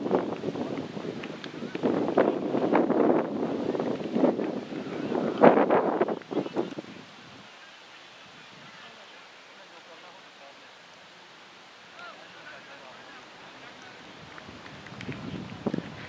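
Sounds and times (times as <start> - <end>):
wind noise on microphone: 0.0 - 7.6, 8.2 - 9.0, 13.9 - 16.0
indistinct outdoor voices: 0.0 - 16.0
low steady hiss: 0.0 - 16.0.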